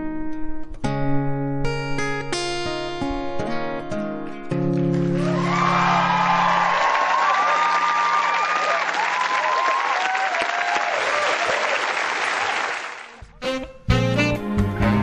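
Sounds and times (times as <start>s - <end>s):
audience applauding and cheering: 4.9s - 13.2s.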